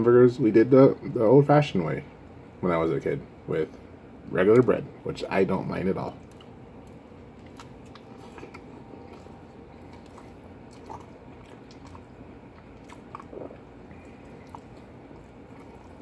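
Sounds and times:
person chewing: 0:06.2 - 0:16.0
wet mouth clicks: 0:06.2 - 0:16.0.

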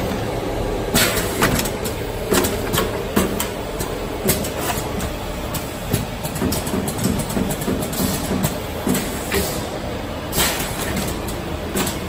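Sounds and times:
packing machine humming: 0:00.0 - 0:12.0
machine clicks and knocks: 0:00.9 - 0:09.5.

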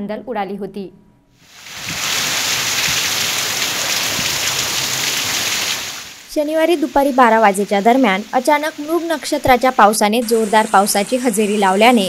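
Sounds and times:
heavy rain pouring: 0:01.4 - 0:12.0.

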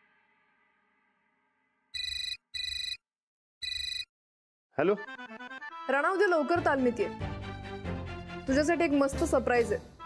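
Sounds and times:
phone ringtone tone bursts: 0:02.0 - 0:03.0, 0:03.6 - 0:04.1.

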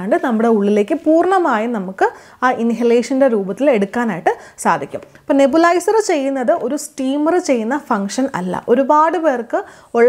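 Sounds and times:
woman speaking: 0:00.0 - 0:10.0.

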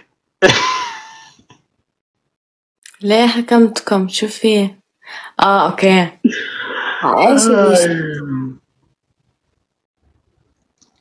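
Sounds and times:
person coughing: 0:00.4 - 0:01.1.

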